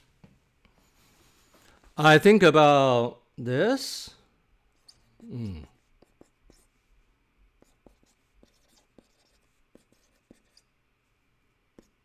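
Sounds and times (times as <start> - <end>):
pen writing on a pad: 5.8 - 6.7, 7.6 - 10.7, 11.8 - 12.0.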